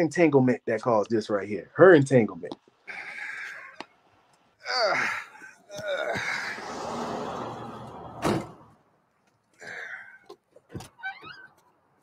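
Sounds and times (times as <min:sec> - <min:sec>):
car door shutting: 0:07.9 - 0:08.7.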